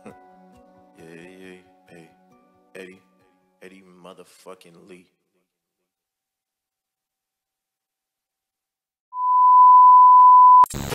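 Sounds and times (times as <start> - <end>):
steady test tone beep: 9.1 - 10.7.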